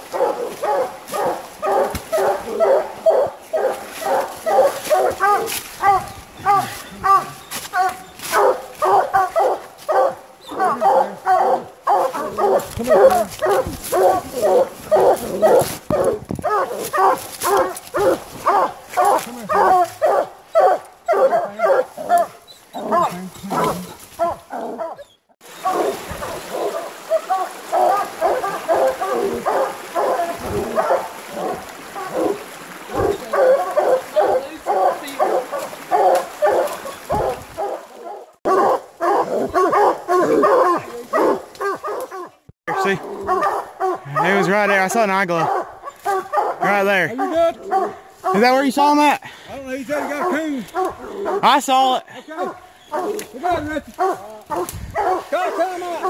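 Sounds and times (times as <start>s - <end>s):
dogs barking: 0.0s - 48.9s, 49.9s - 56.0s.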